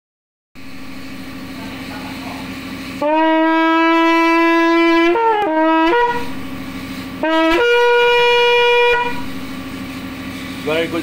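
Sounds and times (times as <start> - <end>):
machinery hum and whir: 0.6 - 11.0.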